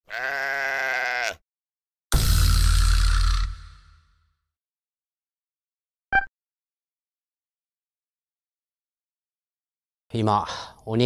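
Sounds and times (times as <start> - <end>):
drawn-out quavering call: 0.1 - 1.4.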